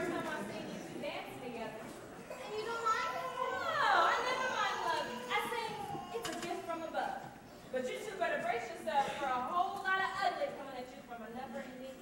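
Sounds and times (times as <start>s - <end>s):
children talking and calling out: 2.1s - 7.1s.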